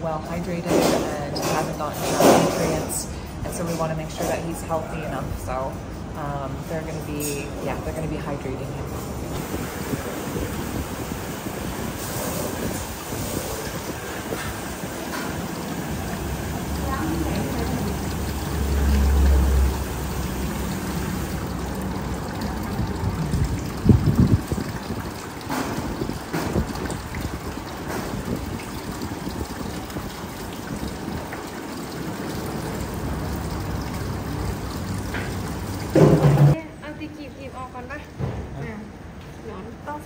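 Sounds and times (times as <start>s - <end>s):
busy treatment room noise: 0.0s - 40.0s
liquid trickling from squeeze bottle: 9.3s - 36.5s.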